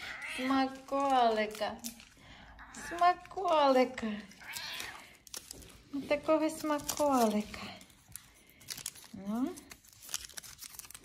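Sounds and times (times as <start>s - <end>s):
cat meowing: 0.0s - 0.6s, 4.4s - 5.1s.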